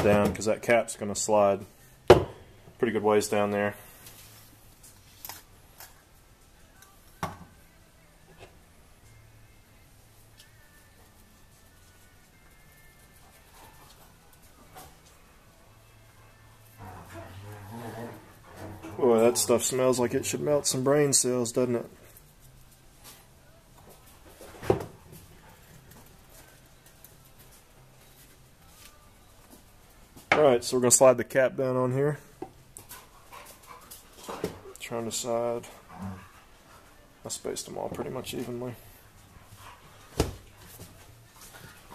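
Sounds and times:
objects knocking on wooden bench: 2.1 - 2.4.

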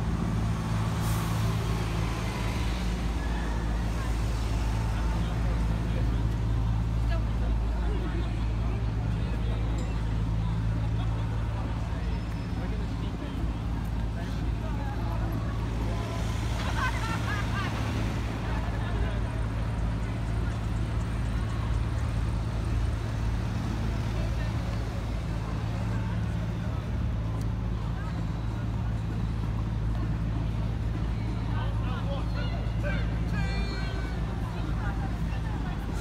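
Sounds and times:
low traffic rumble: 0.0 - 36.0
voices of passers-by: 0.0 - 36.0.

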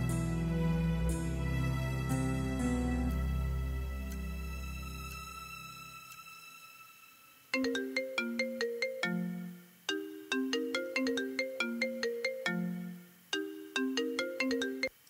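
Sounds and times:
phone ringtone melody: 7.6 - 14.9.

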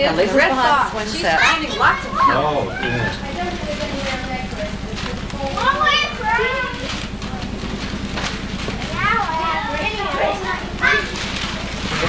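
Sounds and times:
children calling and chattering: 0.0 - 12.0
steady low hum: 0.0 - 12.0.

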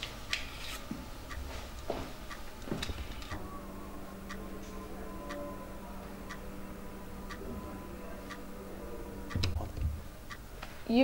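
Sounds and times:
faint low hum: 0.0 - 11.0
clock ticking: 1.2 - 10.7.

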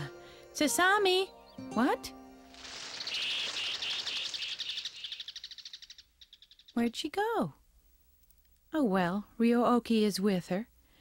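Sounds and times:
bird trilling chirps: 2.5 - 7.0.

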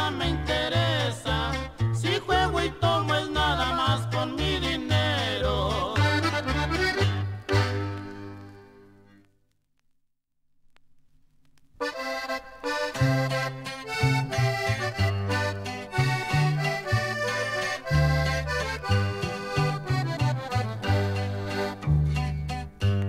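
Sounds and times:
steady bass notes: 0.0 - 9.1, 11.8 - 23.0
accordion lead: 0.0 - 9.3, 11.8 - 23.0.

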